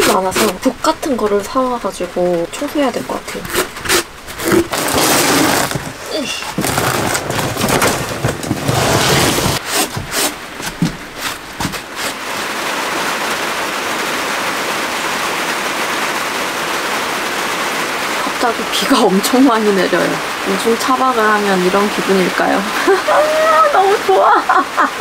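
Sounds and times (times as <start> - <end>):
rain falling on a van: 0.1 - 25.0
sponge rubbing metal floor: 3.1 - 12.2
cardboard box scraping and knocking: 3.3 - 12.2.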